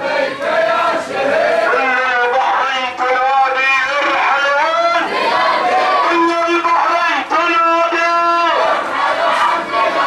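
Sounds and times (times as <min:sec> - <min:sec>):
crowd chanting slogans: 0:00.0 - 0:10.0.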